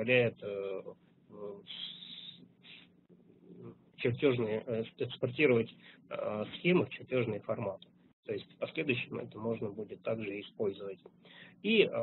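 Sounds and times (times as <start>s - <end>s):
steady low hum: 0.0s - 12.0s
man breathing: 11.2s - 11.6s.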